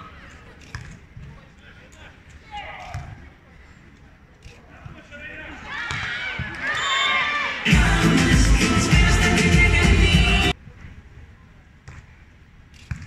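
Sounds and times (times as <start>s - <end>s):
bass-heavy music over loudspeakers: 7.7s - 10.5s.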